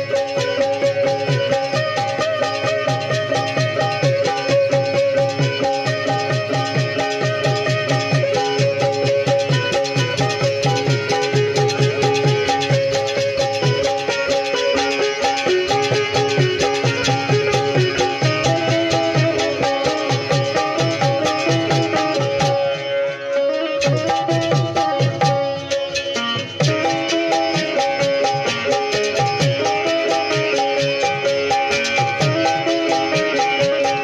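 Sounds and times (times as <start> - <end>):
fast hand-drum beat: 0.0 - 22.7, 23.8 - 34.0
harmonium notes: 0.0 - 34.0
plucked string instrument: 0.0 - 34.0.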